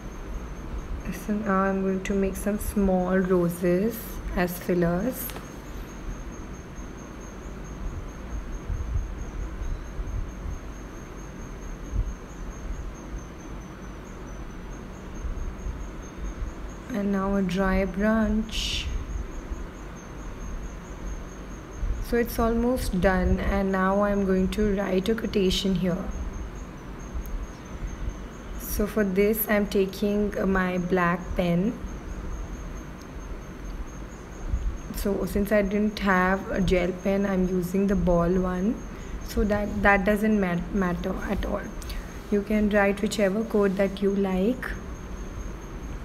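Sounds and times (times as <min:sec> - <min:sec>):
faint hiss: 0:00.0 - 0:46.0.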